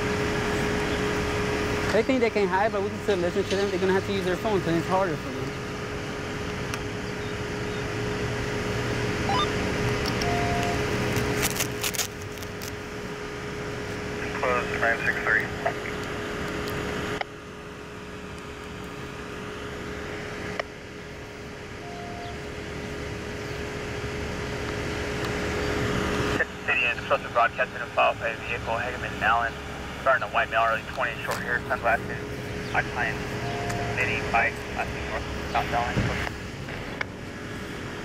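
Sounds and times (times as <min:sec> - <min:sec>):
low hum: 0:00.0 - 0:38.0
outdoor background noise: 0:00.0 - 0:38.0
indistinct voices: 0:26.4 - 0:36.3.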